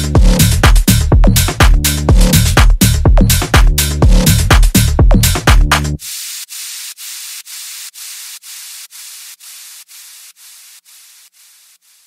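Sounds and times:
pulsing white noise hiss: 0:06.0 - 0:12.0.

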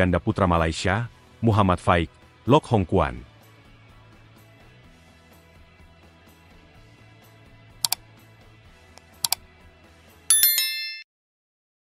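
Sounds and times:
faint background music: 0:00.0 - 0:10.1
bright bell chime: 0:10.3 - 0:11.1.

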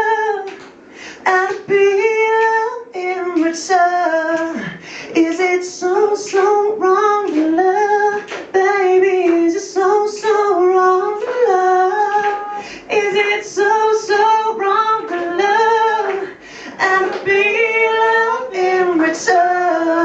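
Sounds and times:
man singing into a microphone: 0:00.0 - 0:00.6, 0:01.2 - 0:20.0.

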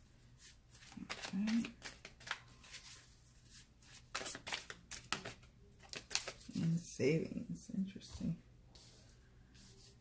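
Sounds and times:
cards being shuffled by hand: 0:00.4 - 0:06.8.

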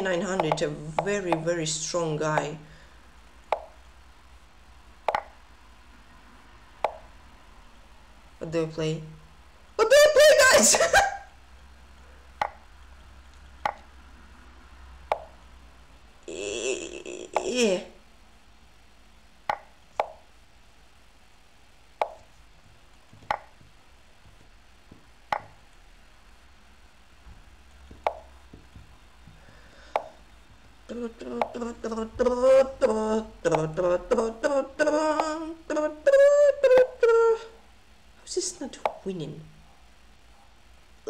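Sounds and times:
man humming a tune: 0:16.3 - 0:17.7, 0:30.9 - 0:37.5.

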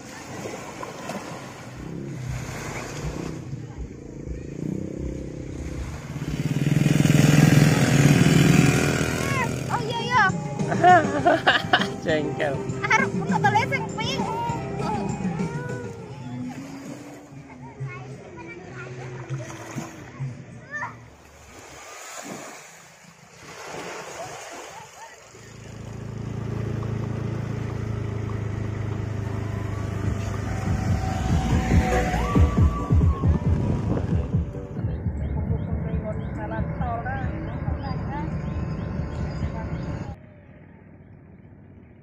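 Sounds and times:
small waves washing onto shore: 0:00.0 - 0:03.6, 0:21.1 - 0:29.4
faint road traffic rumble: 0:00.0 - 0:21.0, 0:22.8 - 0:42.0.

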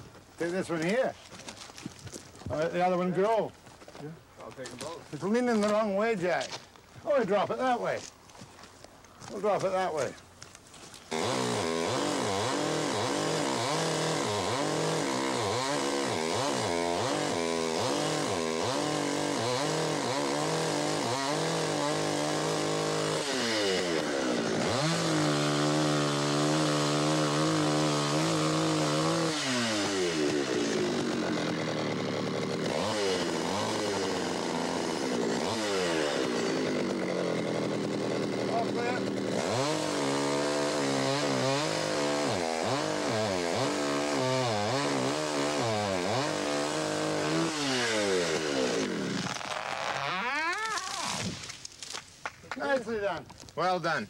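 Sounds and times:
chainsaw cutting: 0:00.0 - 0:53.0.

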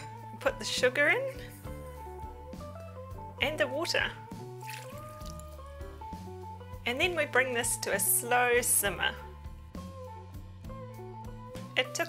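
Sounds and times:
background music: 0:00.0 - 0:12.0
water pouring into saucepan: 0:04.6 - 0:05.7.

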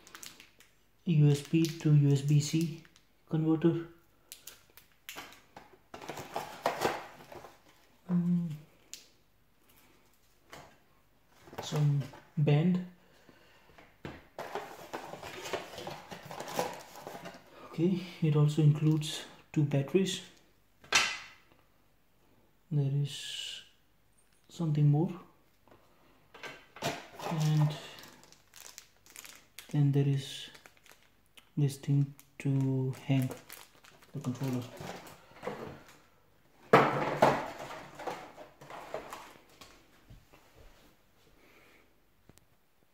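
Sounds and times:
plastic bag crinkling: 0:00.0 - 0:03.0, 0:04.2 - 0:08.0, 0:14.4 - 0:17.5, 0:26.8 - 0:36.0, 0:37.4 - 0:39.8.

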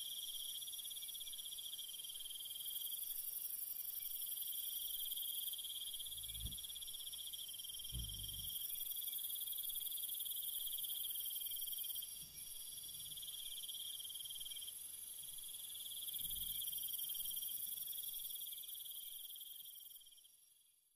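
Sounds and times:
crickets trilling: 0:00.1 - 0:20.4
faint low thuds: 0:06.2 - 0:06.6, 0:07.9 - 0:08.5.

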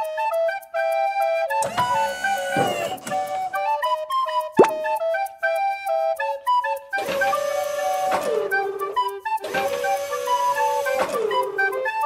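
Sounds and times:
light music with flute melody: 0:00.0 - 0:12.0.

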